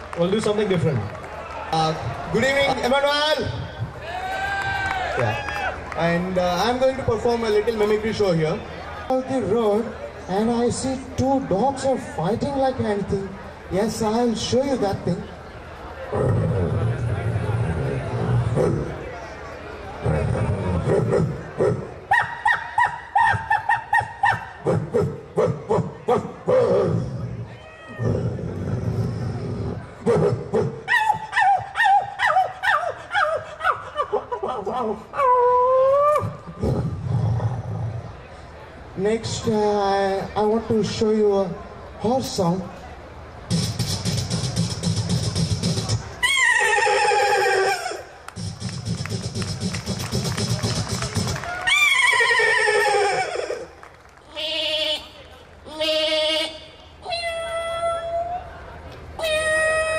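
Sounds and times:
man growling into microphone: 0:16.1 - 0:19.1, 0:20.0 - 0:22.0, 0:24.6 - 0:30.9, 0:34.9 - 0:38.1
man vocal mimicry into microphone: 0:20.0 - 0:27.3, 0:28.1 - 0:37.8, 0:43.5 - 0:53.6.

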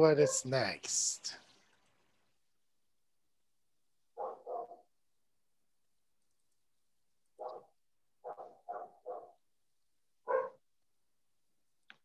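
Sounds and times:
dog barking: 0:04.2 - 0:04.9, 0:07.4 - 0:09.4, 0:10.2 - 0:10.6.

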